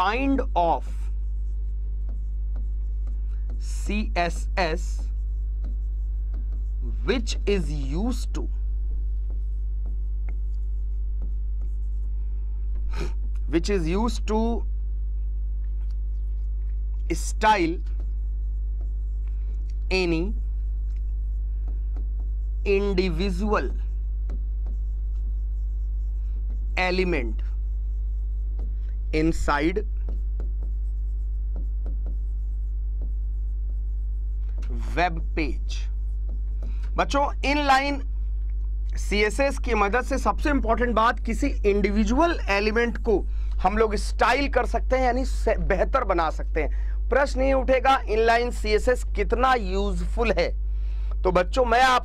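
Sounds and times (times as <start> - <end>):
chalk writing on chalkboard: 0.0 - 12.2, 16.2 - 38.1, 39.0 - 46.3
low electrical hum: 0.0 - 52.0.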